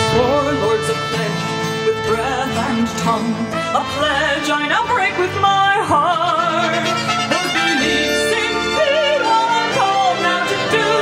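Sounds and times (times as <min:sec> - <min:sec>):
sustained instrumental backing: 0:00.0 - 0:11.0
woman singing with vibrato: 0:00.0 - 0:11.0.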